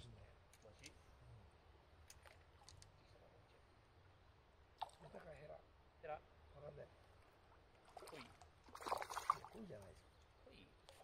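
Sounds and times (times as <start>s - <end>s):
fish splashing at surface: 7.9s - 9.6s.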